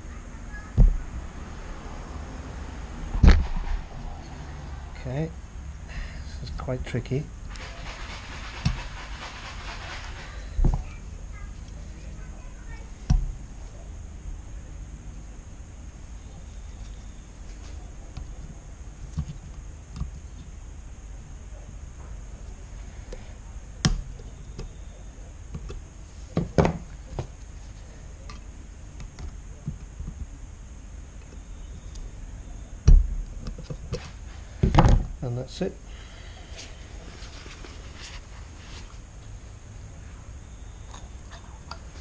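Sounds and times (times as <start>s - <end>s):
heavy thump: 0.7s - 1.4s, 3.1s - 4.1s.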